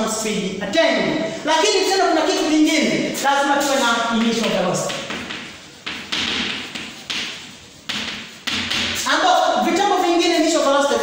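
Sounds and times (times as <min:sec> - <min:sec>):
chalk scraping on blackboard: 0:03.6 - 0:09.2.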